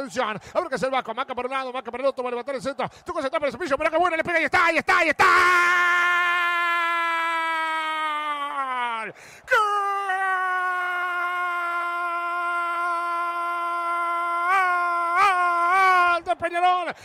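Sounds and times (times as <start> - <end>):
quick breath: 9.2 - 9.5.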